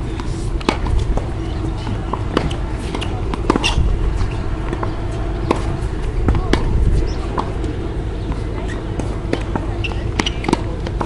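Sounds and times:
low rumble: 0.0 - 9.7
tennis balls struck and bouncing: 0.0 - 11.0.

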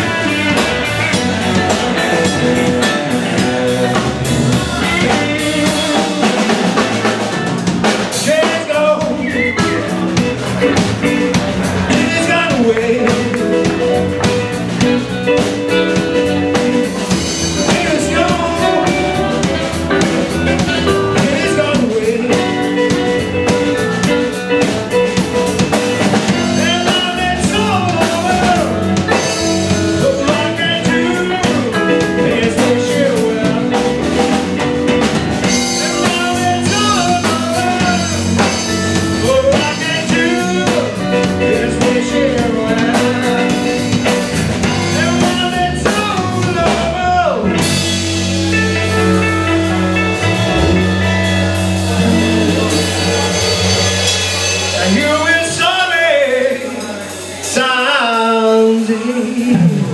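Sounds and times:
live blues band playing: 0.0 - 59.9.

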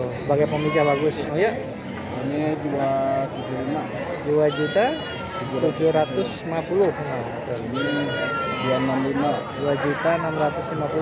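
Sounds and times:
men talking: 0.0 - 11.0
sheep bleating: 3.1 - 3.9, 4.5 - 6.4, 7.7 - 11.0.

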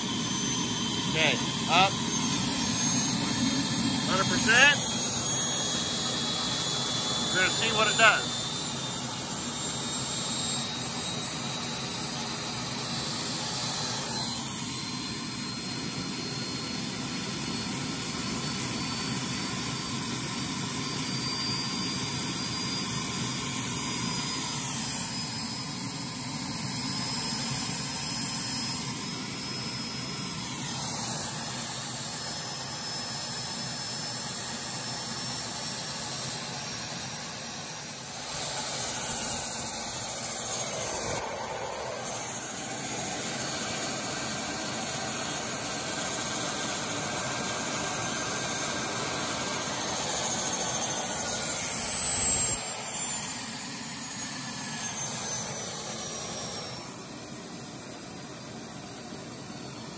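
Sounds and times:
model turbine engine whine: 0.0 - 59.9.

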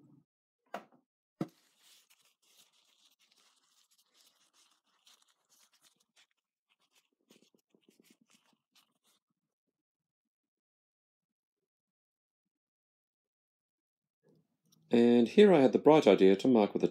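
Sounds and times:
paper towel rustling and crinkling: 1.4 - 9.2.

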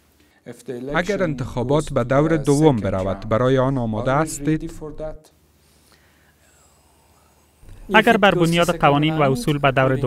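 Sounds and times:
man speaking: 0.8 - 5.3, 7.6 - 10.0.

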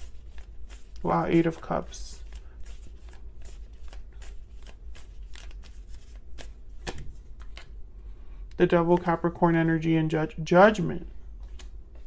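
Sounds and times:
cards being shuffled: 0.0 - 7.8, 11.4 - 12.0.

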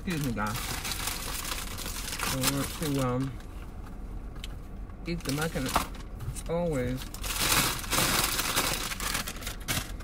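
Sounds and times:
paper packaging rustling: 0.1 - 3.1, 7.0 - 10.0.

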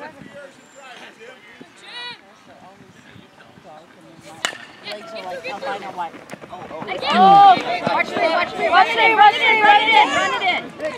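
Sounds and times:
faint voices: 0.0 - 10.9
bat hitting baseball: 4.4 - 5.1.

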